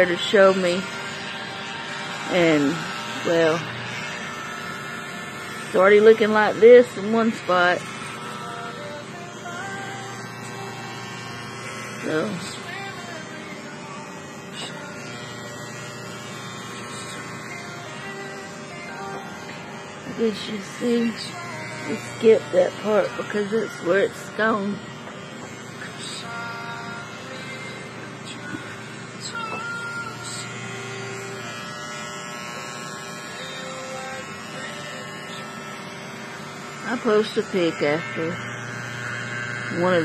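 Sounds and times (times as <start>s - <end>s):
electric hair clippers buzzing: 0.0s - 40.0s.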